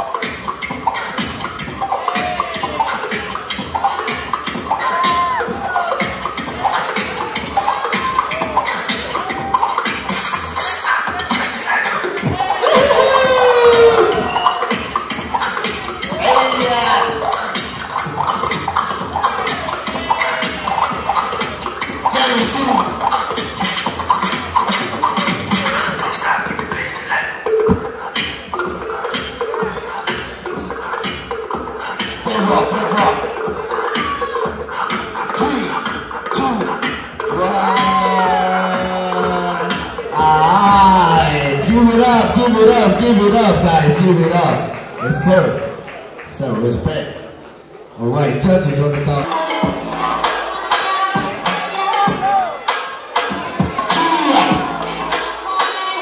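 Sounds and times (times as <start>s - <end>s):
beatboxing: 0.0s - 47.7s, 48.5s - 56.0s.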